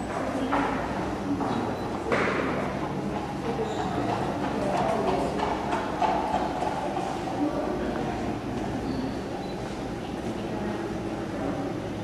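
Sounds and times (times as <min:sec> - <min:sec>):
murmur of voices: 0:00.0 - 0:12.0
horse hooves clip-clopping: 0:02.8 - 0:07.4.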